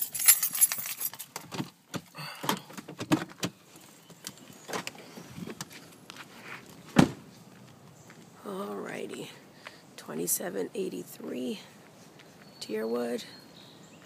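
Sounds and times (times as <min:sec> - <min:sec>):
keys jangling: 0:00.0 - 0:01.5
car door shutting: 0:06.9 - 0:07.2.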